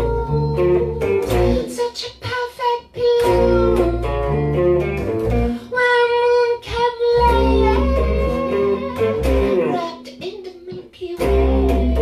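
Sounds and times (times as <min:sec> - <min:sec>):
electric bass: 0:00.0 - 0:01.7, 0:03.2 - 0:05.6, 0:07.2 - 0:09.8, 0:11.2 - 0:12.0
woman singing: 0:00.0 - 0:04.6, 0:05.5 - 0:12.0
electric guitar: 0:00.0 - 0:12.0.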